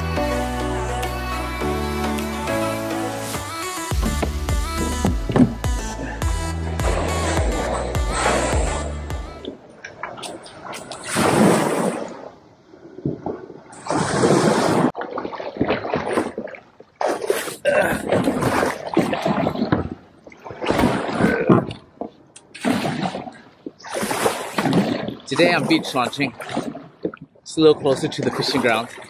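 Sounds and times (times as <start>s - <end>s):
background music: 0.0s - 9.5s
water splashing against kayak: 1.9s - 29.0s.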